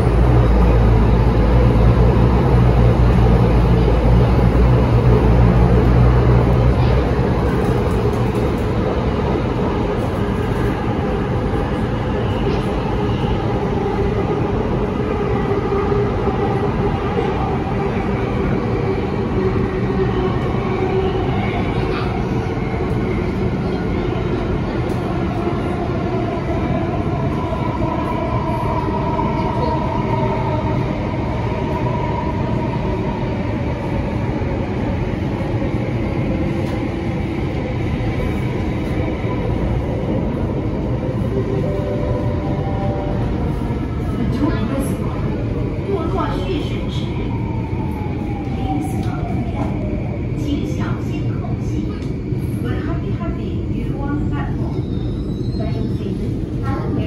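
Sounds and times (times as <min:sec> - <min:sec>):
metro car wheels rumbling: 0:00.0 - 0:57.0.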